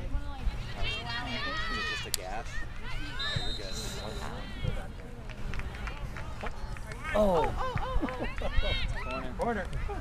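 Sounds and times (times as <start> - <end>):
spectators' overlapping voices: 0.0 - 10.0.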